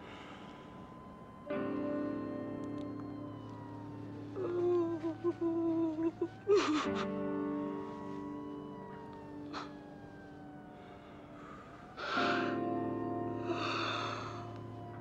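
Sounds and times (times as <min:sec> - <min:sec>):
film score of long held chords: 0:00.0 - 0:15.0
woman sobbing: 0:04.3 - 0:08.2, 0:09.4 - 0:09.9, 0:13.4 - 0:14.6
woman gasping breath: 0:13.4 - 0:14.6.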